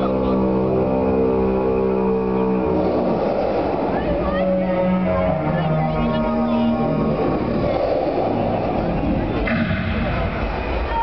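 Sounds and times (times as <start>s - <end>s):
loud noisy rush: 0.0s - 11.0s
low sustained drone: 0.0s - 11.0s.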